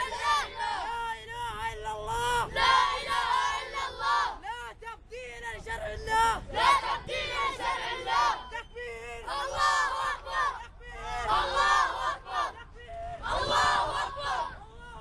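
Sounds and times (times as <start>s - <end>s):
crowd chanting slogans: 0.0s - 4.5s, 5.6s - 15.0s.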